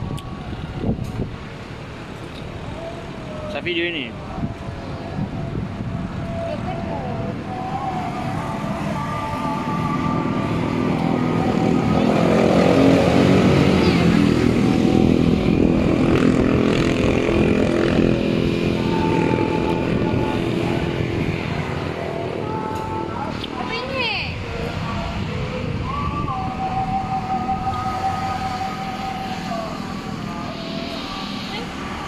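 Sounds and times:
vehicle engine passing by: 0:00.0 - 0:32.0.

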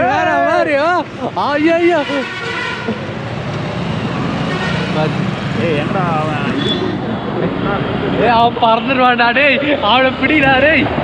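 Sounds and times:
road noise: 0:00.0 - 0:11.0.

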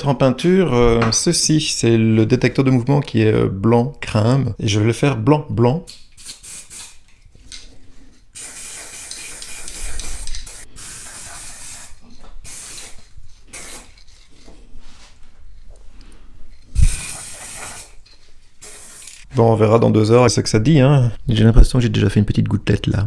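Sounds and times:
spray can hissing: 0:06.2 - 0:07.0, 0:08.4 - 0:14.0, 0:16.8 - 0:18.0, 0:18.6 - 0:19.3.

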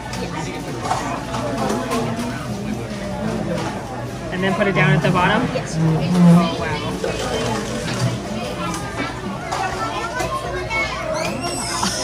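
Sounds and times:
children talking and playing: 0:00.0 - 0:12.0
people talking: 0:00.0 - 0:12.0.

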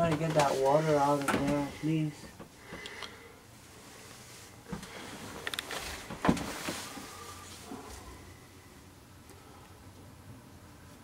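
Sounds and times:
rustling: 0:03.7 - 0:08.4.

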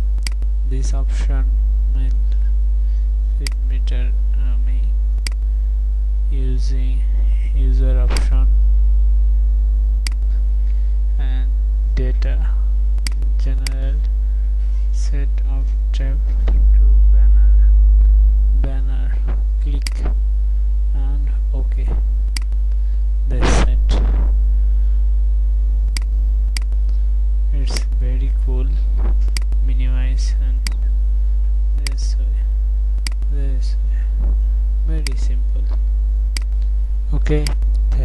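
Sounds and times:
low mains hum: 0:00.0 - 0:38.0
faint sharp clicks: 0:00.2 - 0:00.5, 0:10.0 - 0:10.4, 0:21.9 - 0:22.8
sharp clicks: 0:00.2 - 0:00.5, 0:03.4 - 0:03.8, 0:05.2 - 0:05.5, 0:08.1 - 0:08.5, 0:10.0 - 0:10.4, 0:12.9 - 0:14.2, 0:19.2 - 0:20.2, 0:21.7 - 0:22.8, 0:25.9 - 0:27.0, 0:27.6 - 0:28.4, 0:29.0 - 0:29.7, 0:31.8 - 0:32.1, 0:33.0 - 0:33.3, 0:35.0 - 0:36.7.

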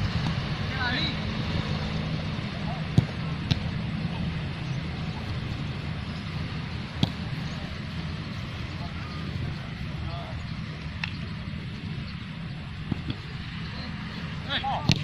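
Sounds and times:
foot kicking football: 0:02.8 - 0:03.7, 0:06.9 - 0:07.4, 0:14.7 - 0:15.0.

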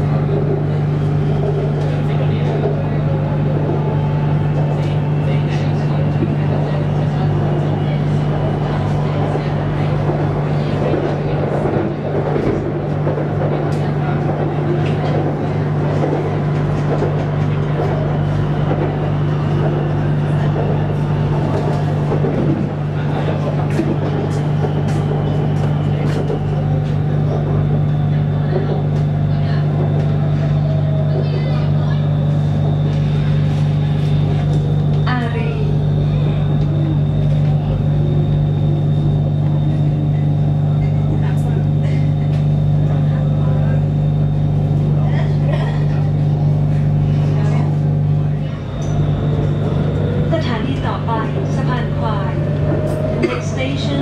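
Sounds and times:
train cabin low hum: 0:00.0 - 0:54.0
voices: 0:00.0 - 0:54.0
motor tones gliding in pitch: 0:46.3 - 0:54.0.

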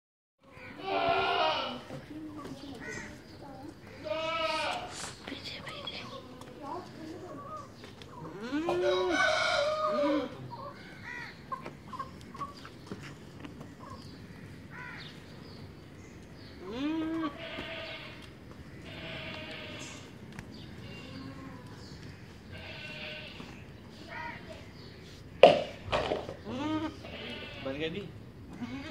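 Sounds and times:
voices: 0:00.4 - 0:14.2, 0:16.4 - 0:28.9
young goat bleating: 0:00.7 - 0:01.9, 0:04.0 - 0:05.0, 0:16.6 - 0:18.2, 0:18.8 - 0:20.1, 0:22.5 - 0:23.5, 0:26.4 - 0:27.8, 0:28.5 - 0:28.9.

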